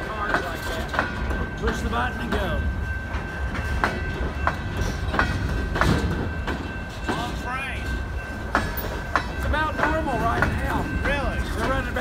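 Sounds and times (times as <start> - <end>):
train wheels rumbling on rail: 0.0 - 12.0
wheels clicking over rail joints: 0.0 - 12.0.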